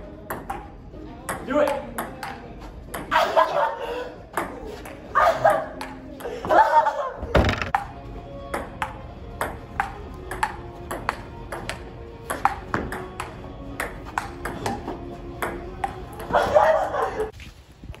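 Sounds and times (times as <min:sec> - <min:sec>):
ping pong ball clicking: 0:08.6 - 0:14.7.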